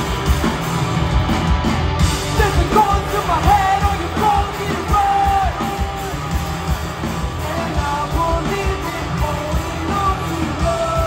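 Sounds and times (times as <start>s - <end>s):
punk rock band playing: 0.0s - 11.0s
shouted lead vocal: 2.3s - 11.0s.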